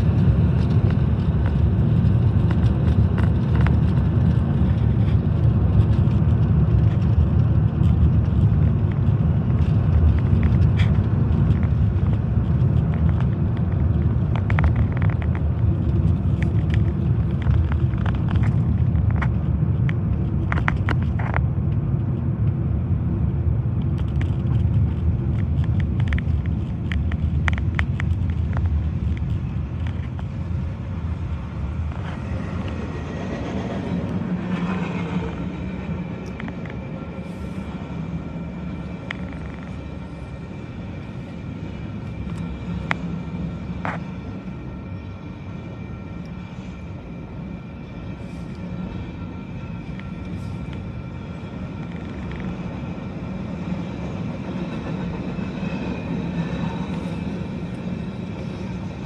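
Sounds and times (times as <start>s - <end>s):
freight train passing: 0.0s - 59.0s
road noise inside moving car: 0.0s - 59.0s
steady high ringing tones: 28.5s - 59.0s.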